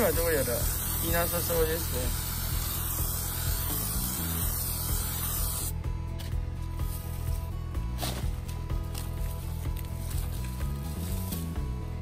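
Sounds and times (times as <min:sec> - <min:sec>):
aerosol spray hissing: 0:00.0 - 0:05.7, 0:09.9 - 0:11.6.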